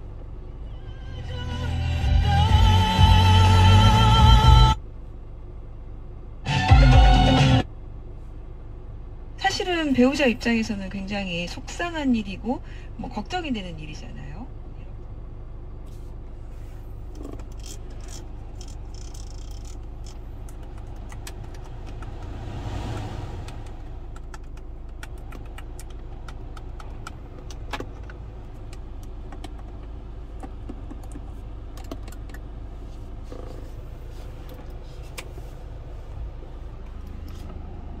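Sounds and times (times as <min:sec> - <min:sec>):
car cabin low hum: 0:00.0 - 0:38.0
car buttons clicking: 0:18.6 - 0:22.3, 0:23.4 - 0:32.5.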